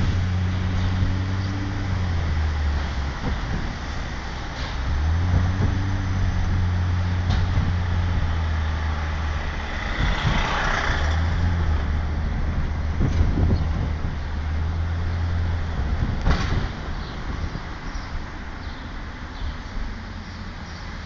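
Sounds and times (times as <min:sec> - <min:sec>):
bus engine drone: 0:00.0 - 0:21.0.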